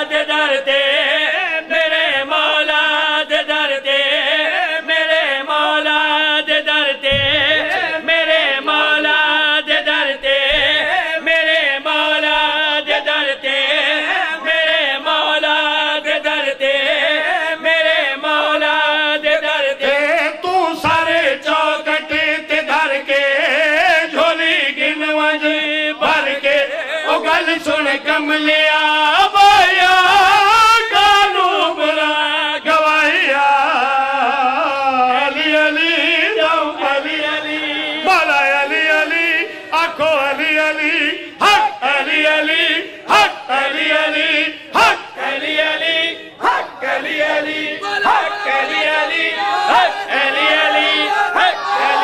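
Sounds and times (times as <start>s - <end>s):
men chanting into a microphone: 0.0s - 52.0s.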